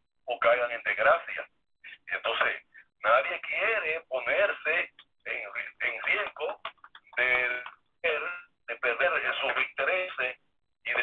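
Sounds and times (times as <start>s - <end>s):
person talking over telephone: 0.3s - 11.0s.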